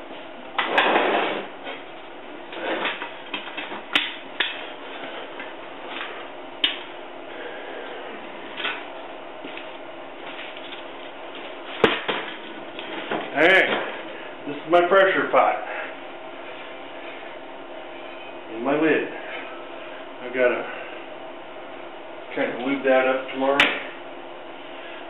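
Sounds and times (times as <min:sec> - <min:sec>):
man talking: 0:13.3 - 0:15.7, 0:20.2 - 0:20.7, 0:22.3 - 0:23.8.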